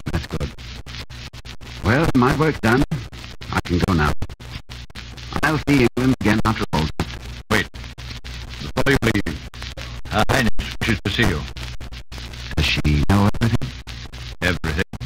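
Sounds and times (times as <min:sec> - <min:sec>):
radio drama music: 0:00.0 - 0:15.0
radio drama voices: 0:00.0 - 0:15.0.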